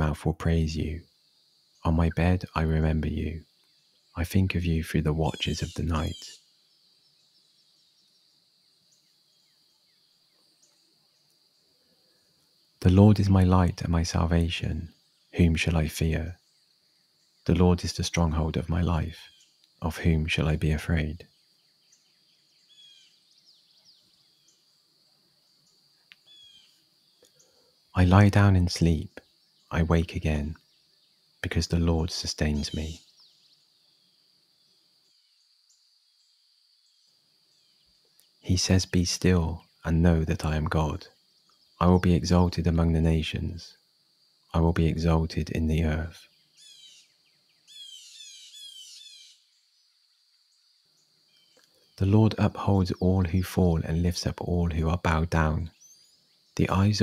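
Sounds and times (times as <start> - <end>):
songbird calls: 0.0 - 57.0.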